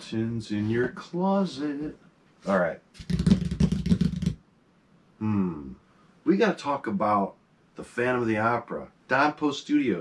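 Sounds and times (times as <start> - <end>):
hands drumming on tabletop: 3.0 - 4.4.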